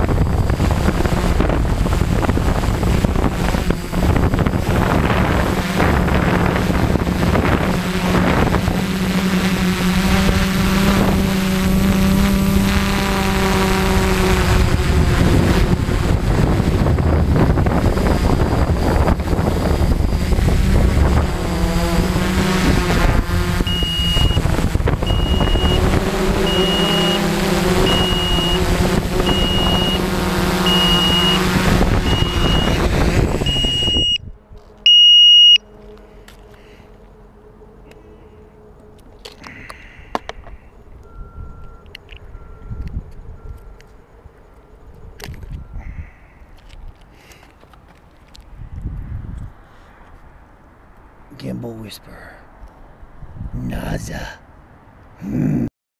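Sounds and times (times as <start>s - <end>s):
drone motors whining: 0.0s - 48.4s
high electronic beep: 23.7s - 24.4s, 25.0s - 25.8s, 26.4s - 28.6s, 29.2s - 30.0s, 30.6s - 32.8s, 33.4s - 34.2s, 34.9s - 35.6s.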